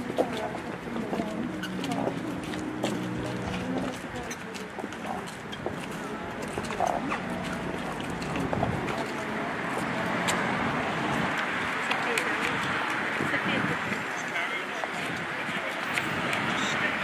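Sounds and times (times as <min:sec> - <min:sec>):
footsteps on pavement: 0:00.0 - 0:17.0.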